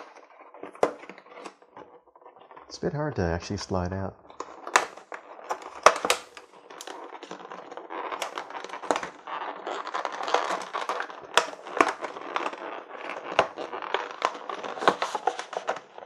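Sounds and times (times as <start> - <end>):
cardboard scraping and rustling: 0.0 - 2.7, 4.3 - 16.0.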